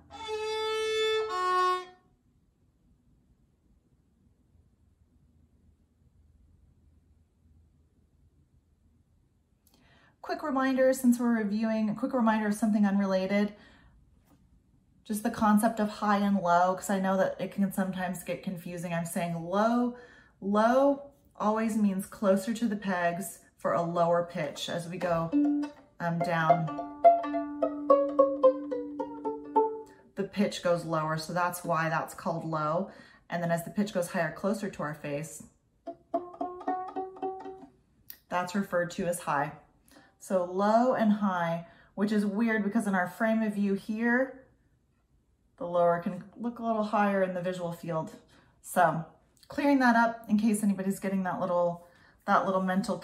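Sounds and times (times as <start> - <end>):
violin bowed notes: 0.0 - 2.1, 24.5 - 30.1, 35.8 - 37.8
low string ringing: 25.2 - 30.0.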